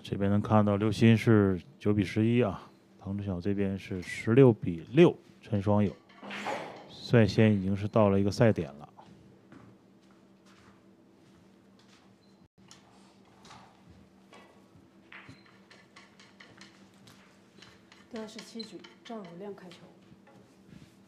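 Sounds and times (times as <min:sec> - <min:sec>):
pool ball clicks and knocks: 0:13.5 - 0:20.5.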